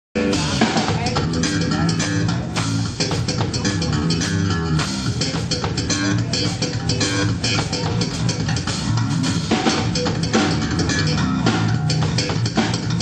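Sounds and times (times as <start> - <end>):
drum kit: 0.2 - 13.0
electric bass: 0.2 - 13.0
electric guitar: 0.2 - 13.0.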